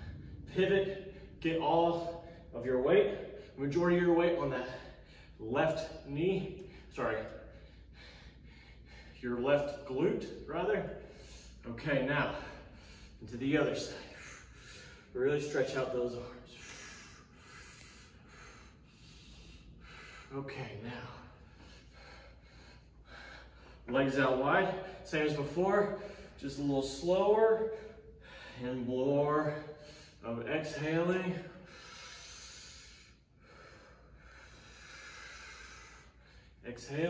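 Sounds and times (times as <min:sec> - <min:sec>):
man breathing quickly: 0:00.0 - 0:15.2, 0:16.2 - 0:24.0, 0:24.6 - 0:26.7, 0:27.3 - 0:30.2, 0:31.1 - 0:36.6.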